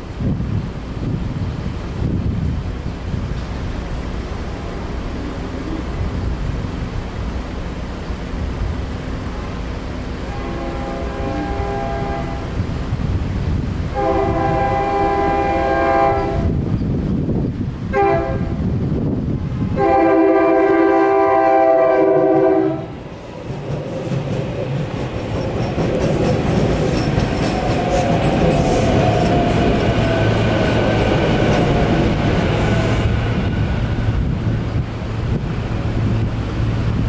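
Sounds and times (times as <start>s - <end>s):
train horn blasts: 10.2s - 12.6s, 13.9s - 16.6s, 17.9s - 18.7s, 19.7s - 23.0s.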